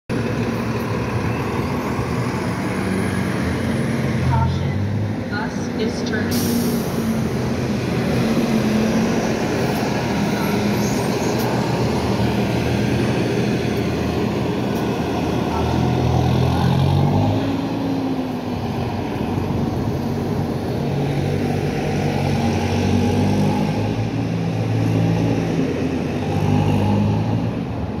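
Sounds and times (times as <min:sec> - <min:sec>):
street traffic noise: 0:00.1 - 0:28.0.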